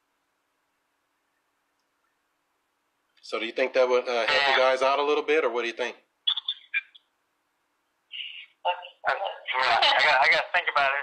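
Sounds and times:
muffled sounds over telephone: 8.1s - 11.0s.

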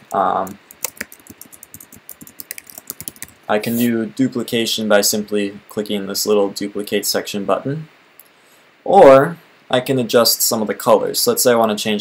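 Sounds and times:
keyboard typing clicks: 0.0s - 3.4s.

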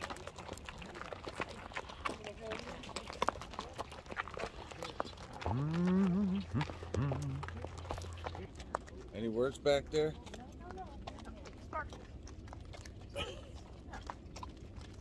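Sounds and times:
hooves clopping on dirt road: 0.0s - 15.0s.

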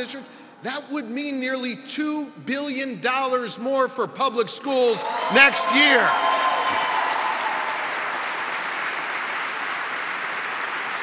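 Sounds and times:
large audience applauding: 5.0s - 11.0s.

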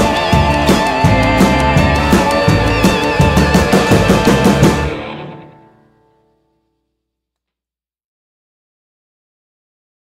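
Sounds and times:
band with drums playing: 0.0s - 5.4s.

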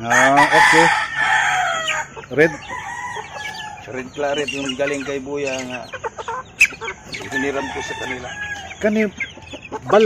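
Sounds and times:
rooster crowing: 0.0s - 4.8s, 6.8s - 8.9s.

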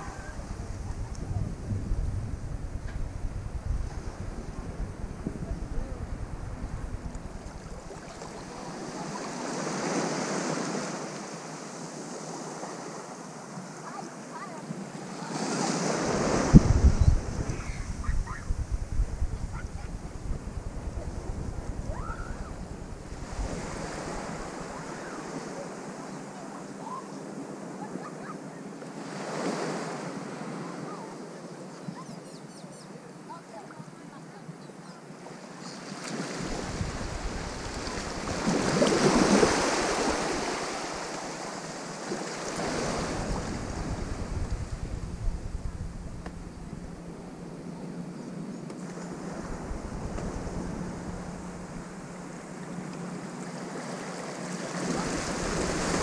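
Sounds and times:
wind buffeting microphone: 0.0s - 8.6s, 16.0s - 24.9s, 36.4s - 41.3s, 42.6s - 48.1s, 49.0s - 52.3s
small waves washing on sand: 3.8s - 18.4s, 19.3s - 31.3s, 35.2s - 45.7s, 48.7s - 56.0s.

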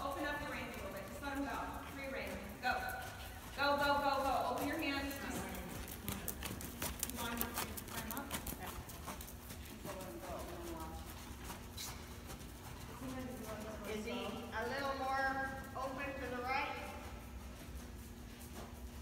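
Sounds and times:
people talking: 0.0s - 9.2s, 12.9s - 17.0s
horse hoofbeats on sand: 0.0s - 19.0s.

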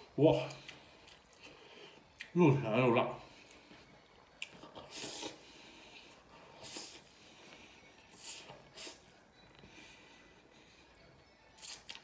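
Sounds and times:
man slurping noodles: 4.8s - 5.4s.

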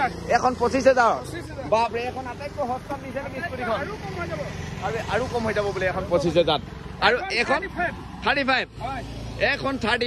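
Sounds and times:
people talking: 0.0s - 10.0s
road traffic hum: 0.0s - 10.0s.

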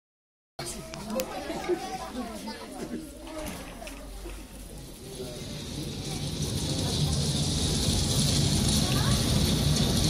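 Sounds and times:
people chattering: 0.6s - 10.0s.

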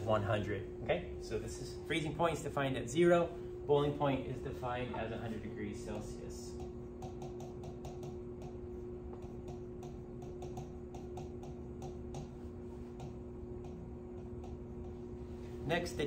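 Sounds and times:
low electrical hum: 0.0s - 16.0s
stylus tapping on glass: 6.6s - 15.0s.

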